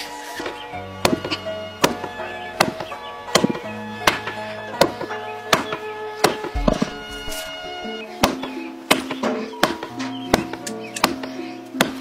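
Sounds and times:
background music: 0.0s - 12.0s
hammer pounding ink paste on wood: 5.6s - 7.5s.

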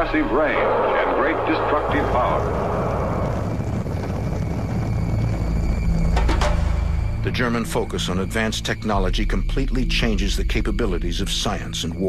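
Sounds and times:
rocket engine rumble: 0.0s - 12.0s.

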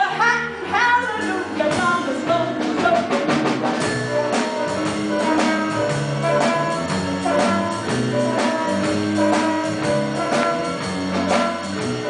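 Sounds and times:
brassy jazz band music: 0.0s - 12.0s.

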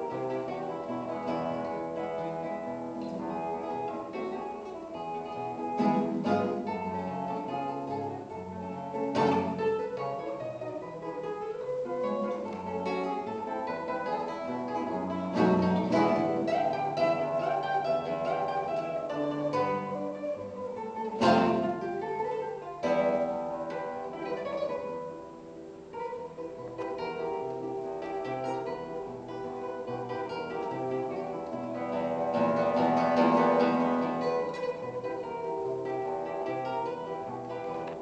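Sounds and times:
classical guitar fingerstyle: 0.0s - 38.0s.

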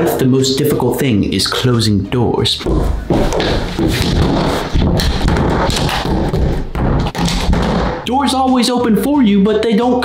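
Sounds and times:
door banging against frame: 3.2s - 8.0s.

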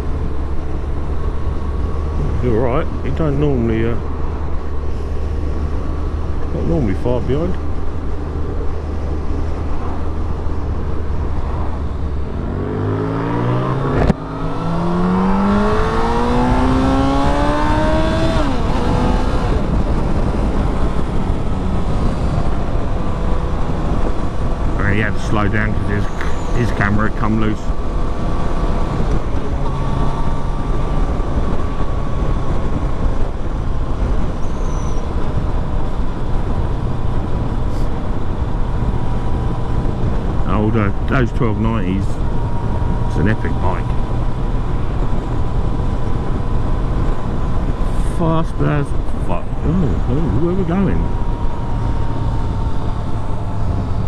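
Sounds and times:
motorcycle engine accelerating: 0.0s - 54.0s
wind noise on microphone: 13.7s - 24.8s, 27.7s - 40.5s, 43.9s - 48.0s.

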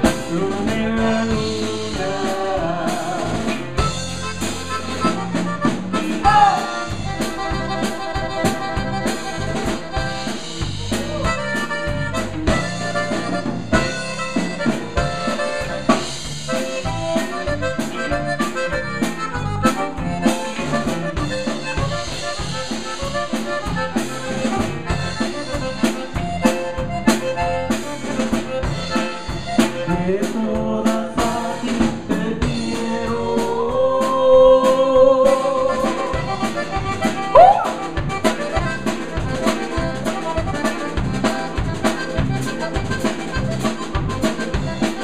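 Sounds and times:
button accordion melody: 0.0s - 33.7s, 34.6s - 45.0s
drum kit beat: 0.0s - 45.0s
electric bass: 0.0s - 45.0s.

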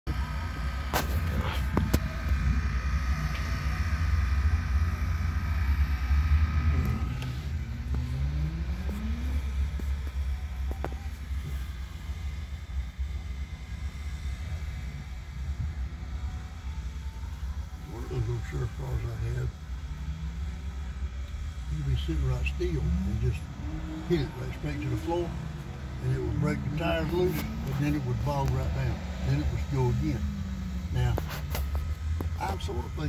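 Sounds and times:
car engines rumbling: 0.0s - 33.0s.

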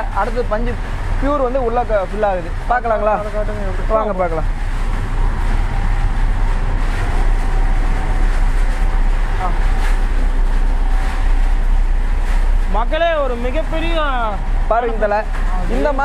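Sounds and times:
cleaning machine droning: 0.0s - 16.0s.

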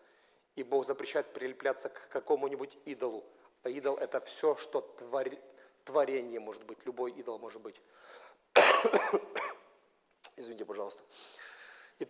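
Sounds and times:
man coughing: 8.6s - 9.7s.

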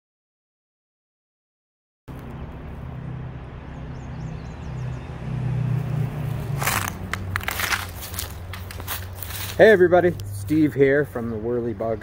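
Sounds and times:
crunching and crackling: 6.4s - 10.6s.

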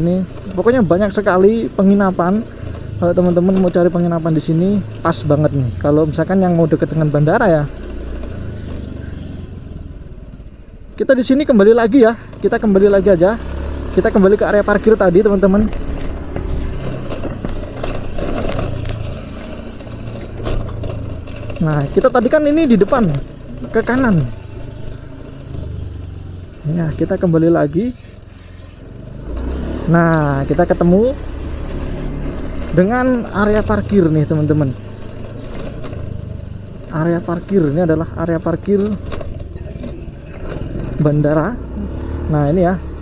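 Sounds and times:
vehicle engine humming: 0.0s - 43.0s.

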